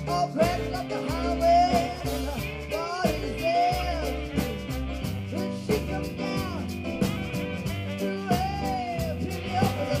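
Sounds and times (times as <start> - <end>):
drum kit steady beat: 0.0 - 10.0
live rock band playing: 0.0 - 10.0.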